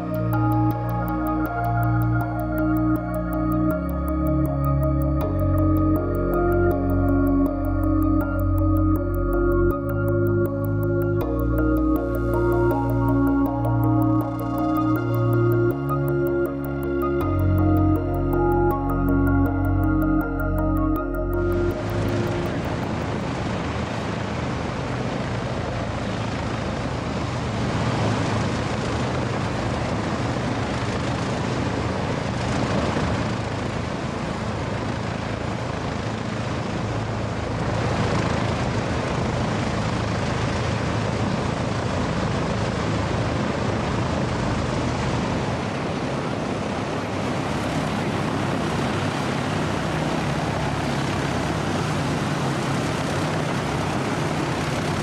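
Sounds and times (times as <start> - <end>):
propeller aircraft engines droning: 0.0 - 55.0.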